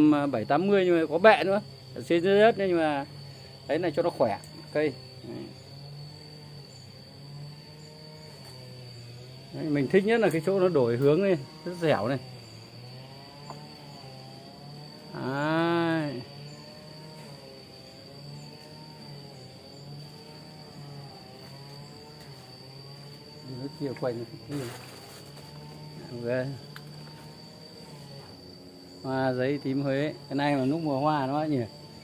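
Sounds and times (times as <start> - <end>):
high-pitched insect trill: 0.0 - 32.0.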